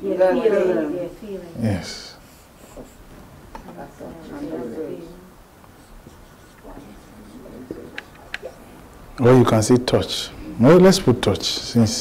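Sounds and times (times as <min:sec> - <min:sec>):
murmured voices: 0:00.0 - 0:09.4
marker pen scratching on paper: 0:05.8 - 0:08.5.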